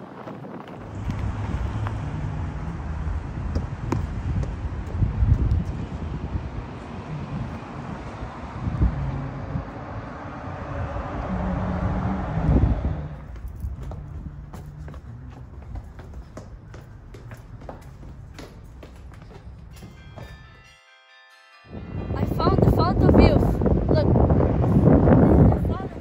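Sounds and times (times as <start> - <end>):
wind buffeting microphone: 0.0 - 20.0, 21.7 - 26.0
church bells ringing: 19.3 - 23.9.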